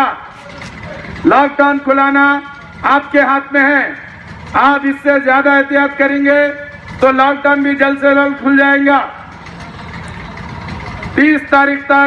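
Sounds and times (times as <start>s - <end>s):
auto-rickshaw engine idling: 0.0s - 12.0s
street background noise: 0.0s - 12.0s.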